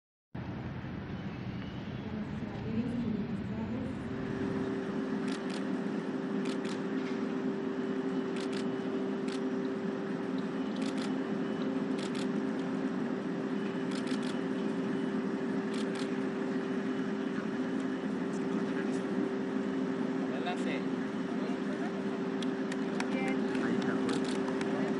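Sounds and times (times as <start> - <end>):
steady droning hum: 0.4 - 24.9
camera shutters clicking: 5.2 - 5.7, 6.4 - 6.8, 8.4 - 9.4, 10.8 - 11.2, 12.0 - 12.3, 13.9 - 14.4, 15.7 - 16.1, 22.7 - 24.7.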